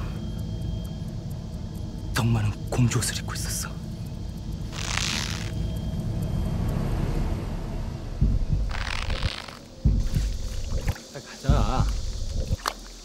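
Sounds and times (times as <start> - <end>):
steady low rumble: 0.0 - 12.6
dull thumps: 9.8 - 12.6.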